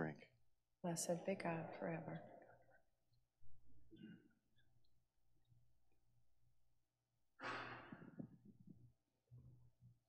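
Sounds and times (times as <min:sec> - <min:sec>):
breathy exhale: 0:07.4 - 0:08.1.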